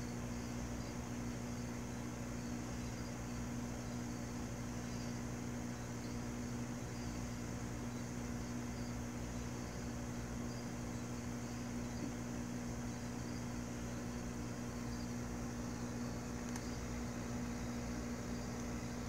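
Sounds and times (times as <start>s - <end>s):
aquarium air pump humming: 0.0s - 19.0s.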